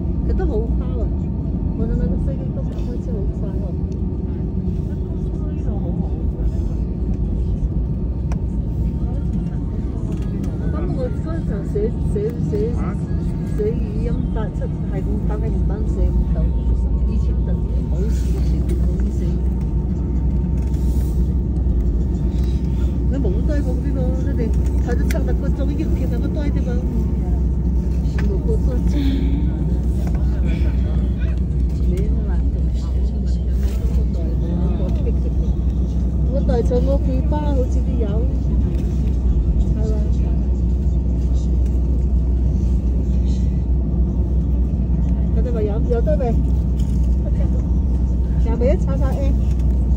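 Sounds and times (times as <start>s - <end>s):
airliner cabin low rumble: 0.0s - 49.9s
passengers talking: 0.0s - 49.9s.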